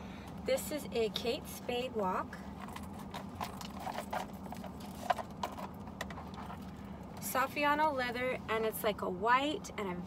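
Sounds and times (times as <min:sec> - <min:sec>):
wallet and metal chain clicking: 0:02.6 - 0:06.7.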